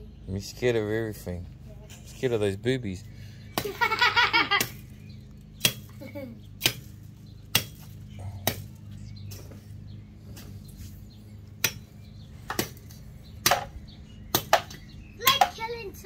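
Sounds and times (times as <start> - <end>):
machete chopping tree trunk: 3.5 - 3.8, 4.5 - 4.9, 5.6 - 6.0, 6.6 - 9.6, 11.6 - 15.6.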